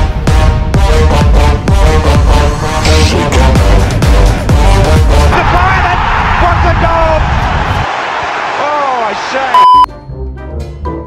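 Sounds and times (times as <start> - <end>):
bass-heavy electronic music: 0.0 - 5.4
young men shouting: 5.3 - 9.5
loud censor bleep: 9.6 - 9.9.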